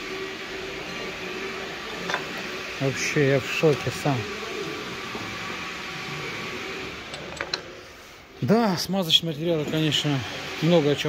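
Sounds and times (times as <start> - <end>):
steady mechanical hiss: 0.0 - 11.0.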